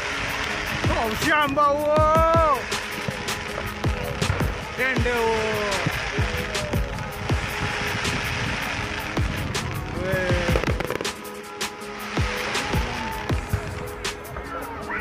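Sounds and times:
faint background music: 0.0s - 15.0s
fireworks bangs and cracks: 0.0s - 15.0s.

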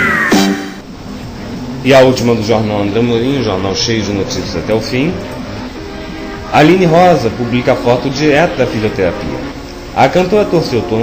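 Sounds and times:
person speaking over music: 6.4s - 11.0s.

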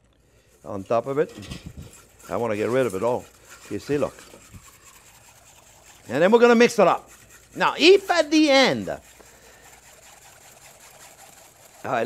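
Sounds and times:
wire whisk scraping mesh strainer: 0.4s - 12.0s.

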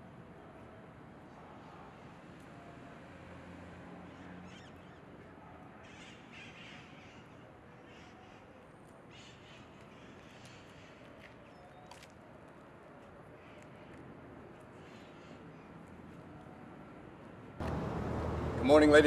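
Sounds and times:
faint outdoor ambience: 0.0s - 19.0s.

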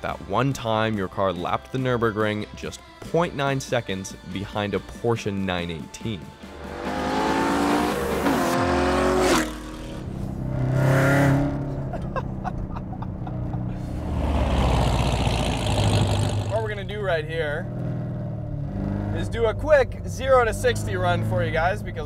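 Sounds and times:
man speaking: 0.0s - 6.4s, 16.5s - 17.6s, 19.2s - 22.0s
road noise: 6.0s - 22.0s
car engine accelerating hard: 6.4s - 22.0s.

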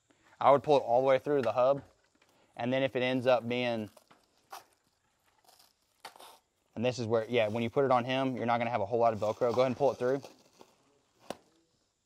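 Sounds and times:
person speaking: 2.6s - 4.0s, 6.8s - 10.4s.

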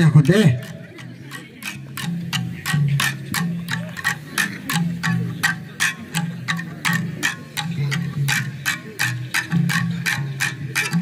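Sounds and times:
bamboo tube clicking strokes: 0.2s - 11.0s.

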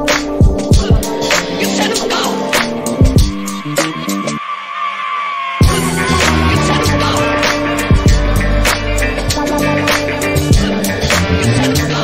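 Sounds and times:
hip hop beat: 0.0s - 12.0s
held bassline: 0.3s - 4.4s, 5.6s - 12.0s
deep kick drums: 0.4s - 1.1s, 3.0s - 3.5s, 7.9s - 9.5s.

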